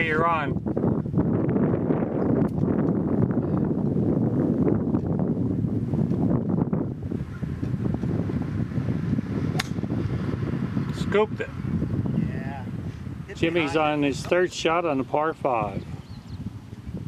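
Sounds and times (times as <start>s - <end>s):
wind buffeting microphone: 0.0s - 17.0s
golf club striking ball: 9.5s - 10.0s.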